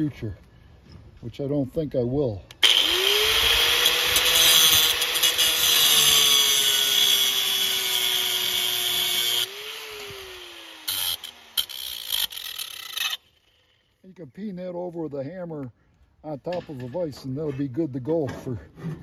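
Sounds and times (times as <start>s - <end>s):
angle grinder cutting metal: 2.6s - 13.6s.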